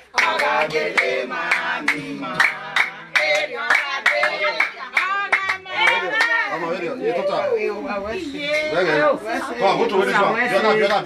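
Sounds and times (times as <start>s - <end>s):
hands clapping in rhythm: 0.0s - 6.4s, 10.8s - 11.0s.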